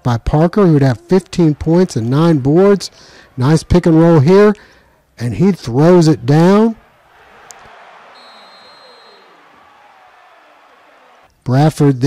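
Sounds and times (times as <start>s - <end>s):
referee whistle: 6.8s - 11.3s.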